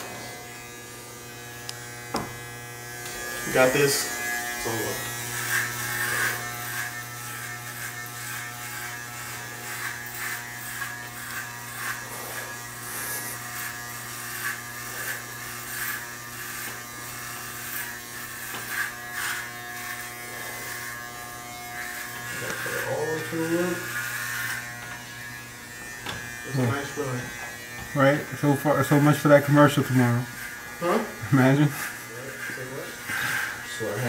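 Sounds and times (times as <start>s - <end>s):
electric hair clippers buzzing: 0.0s - 34.0s.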